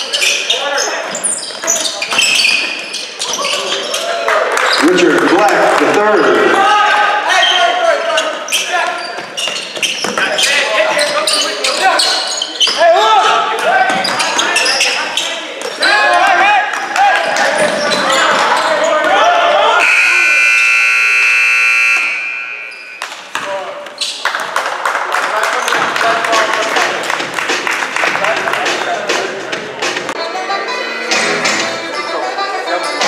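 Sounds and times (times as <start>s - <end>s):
people shouting: 6.5s - 8.0s
scoreboard buzzer: 19.8s - 23.0s.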